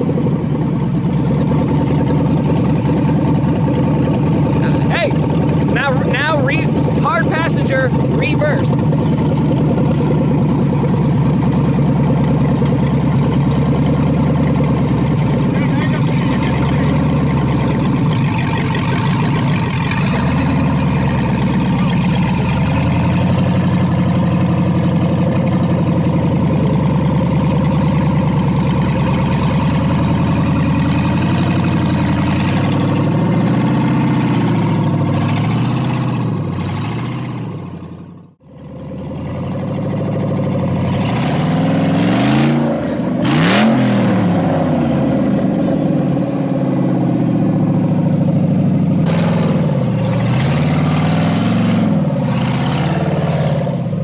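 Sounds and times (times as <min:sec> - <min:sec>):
buggy engine running and revving: 0:00.0 - 0:54.0.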